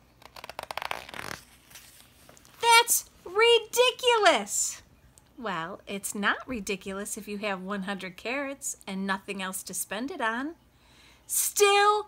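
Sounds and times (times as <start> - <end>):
book page turning: 0.0 - 2.6.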